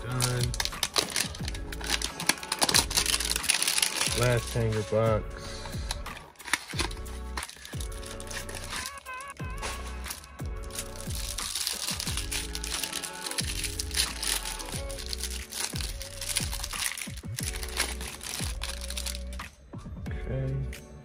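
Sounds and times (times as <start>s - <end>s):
cellophane wrapper crinkling: 0.0s - 4.7s, 5.9s - 19.4s
background music: 0.0s - 21.0s.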